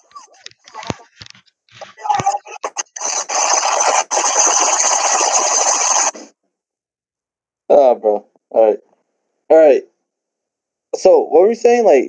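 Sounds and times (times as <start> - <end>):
loud rasping rubbing noise: 0.3 - 6.3.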